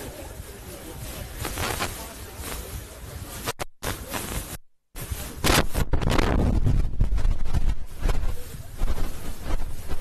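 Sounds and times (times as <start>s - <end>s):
wind buffeting microphone: 4.1s - 10.0s.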